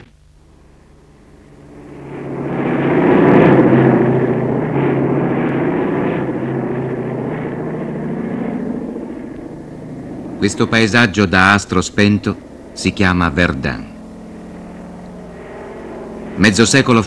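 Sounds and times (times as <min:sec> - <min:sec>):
propeller aircraft engine droning: 0:00.0 - 0:17.0.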